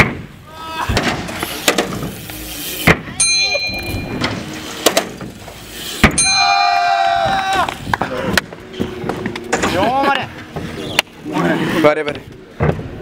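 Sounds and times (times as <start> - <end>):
bike impacts on ramp: 0.0 - 3.2, 3.8 - 7.7
high-pitched tone: 2.2 - 4.7
short metallic ring: 6.2 - 6.7.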